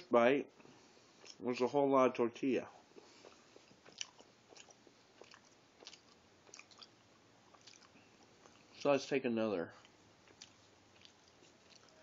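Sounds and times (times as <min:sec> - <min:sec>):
chewing food: 0:01.1 - 0:01.4, 0:02.9 - 0:08.9, 0:09.8 - 0:12.0
mouth clicks and smacks: 0:03.0 - 0:08.9, 0:09.8 - 0:12.0.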